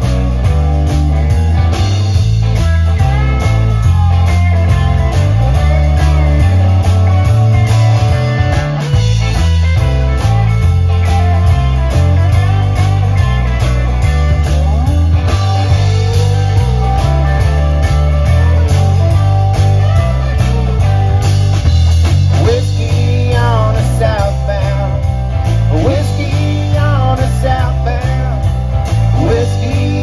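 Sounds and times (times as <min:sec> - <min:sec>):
electric guitars: 0:00.0 - 0:30.0
heavy bass line: 0:00.0 - 0:30.0
steady drum beat: 0:00.0 - 0:30.0.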